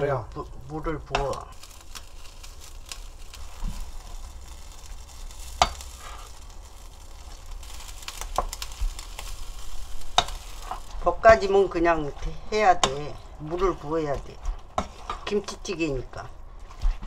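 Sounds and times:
food sizzling in a pot: 0.0s - 15.9s.

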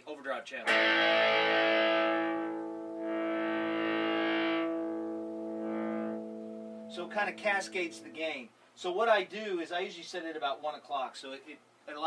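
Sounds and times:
overdriven electric guitar chords: 0.7s - 8.2s.

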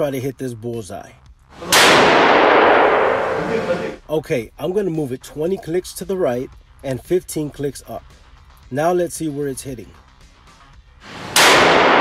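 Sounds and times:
rifle shot reverberating indoors: 1.6s - 3.6s, 11.0s - 12.0s.

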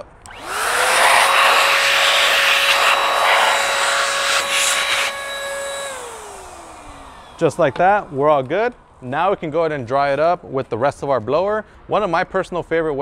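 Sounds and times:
handheld car dryer motor whining: 0.3s - 8.5s
loud rush of air: 0.4s - 8.4s.

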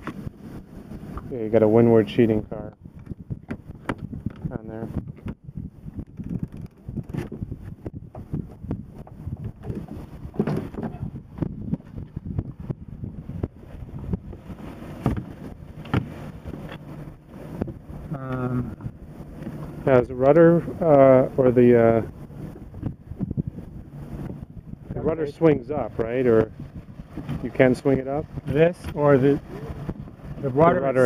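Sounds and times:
wind rumble on microphone: 0.0s - 31.0s
knocks and rubbing: 6.0s - 12.2s, 14.2s - 17.8s.

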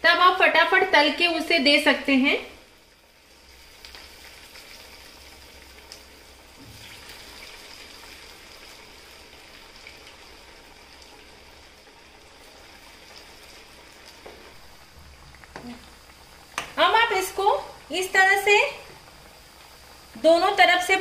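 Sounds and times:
food deep-frying in hot oil: 0.0s - 21.0s
oil crackles: 3.3s - 20.3s.

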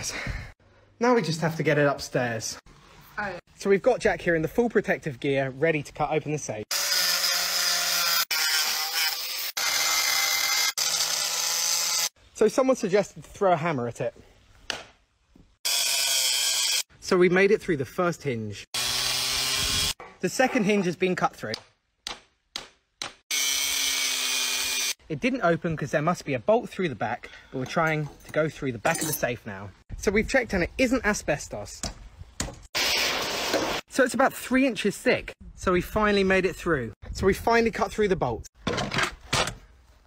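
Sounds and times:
angle grinder cutting metal: 6.7s - 12.2s, 15.6s - 16.9s, 18.8s - 20.0s, 23.3s - 25.0s.

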